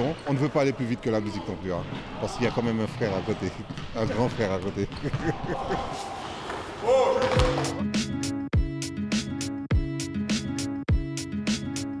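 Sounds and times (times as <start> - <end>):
basketball court noise: 0.0 - 8.2
basketball bouncing: 2.9 - 5.4, 6.5 - 7.8.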